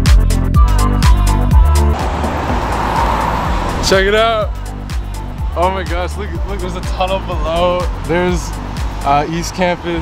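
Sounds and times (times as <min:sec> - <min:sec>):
electronic music with soft beat: 0:00.0 - 0:09.7
road traffic rushing: 0:00.9 - 0:10.0
man's voice: 0:03.8 - 0:04.7, 0:05.4 - 0:10.0.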